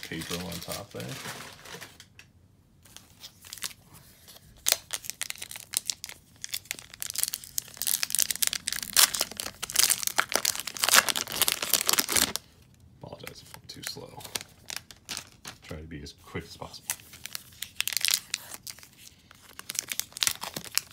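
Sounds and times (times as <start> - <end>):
foil wrapper tearing and crinkling: 0.0 - 2.1, 4.4 - 12.5, 14.2 - 15.6, 16.9 - 20.9.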